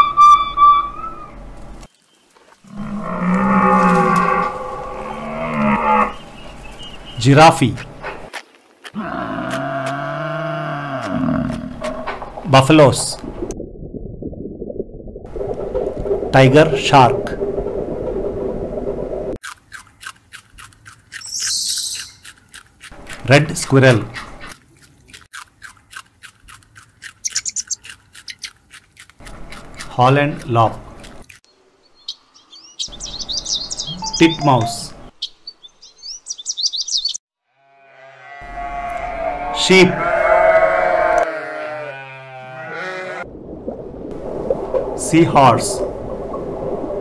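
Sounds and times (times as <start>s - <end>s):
low rumble: 13.1s - 19.4s
squirrel cracking seed shells: 19.4s - 31.4s
sheep bleating: 37.5s - 43.2s.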